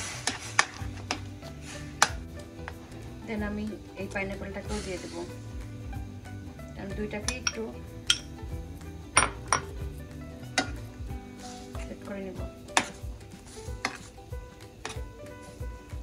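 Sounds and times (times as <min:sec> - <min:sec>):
metal spoon clinking on pan: 0:07.2 - 0:08.3.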